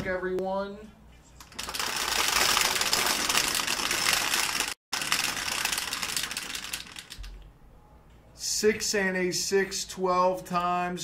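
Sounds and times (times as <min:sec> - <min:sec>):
dice rattling in plastic roller: 0:01.4 - 0:07.2.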